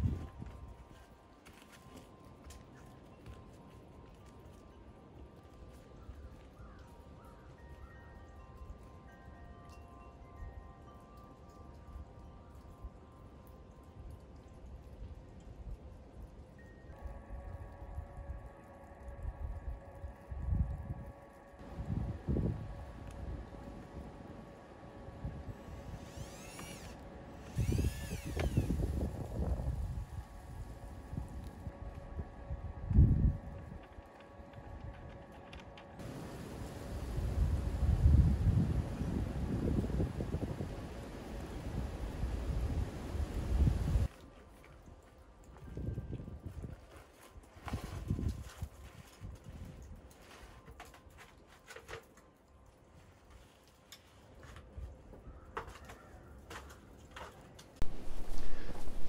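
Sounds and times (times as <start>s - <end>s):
wind gusting over microphone: 0.0s - 0.4s, 21.6s - 24.2s, 27.5s - 33.8s, 36.0s - 44.1s, 57.8s - 59.0s
faint steady hum: 0.0s - 44.1s, 57.8s - 59.0s.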